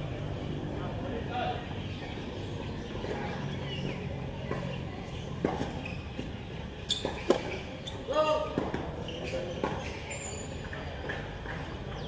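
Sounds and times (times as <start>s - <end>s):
tennis ball bouncing on hard court: 7.0s - 7.6s.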